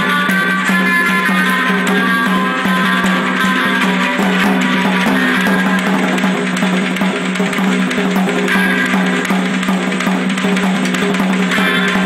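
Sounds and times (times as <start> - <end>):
drum kit fast rock pattern: 0.0 - 12.0
music with steady notes: 0.0 - 12.0.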